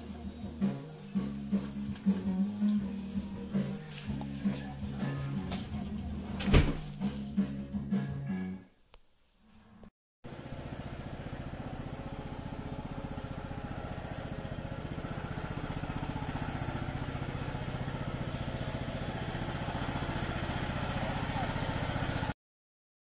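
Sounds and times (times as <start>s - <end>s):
riding mower engine running: 0.0s - 6.4s, 10.3s - 22.4s.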